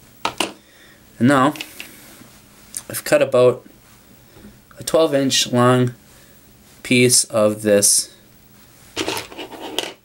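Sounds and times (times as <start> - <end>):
hands scratching and rubbing material: 8.6 - 10.0.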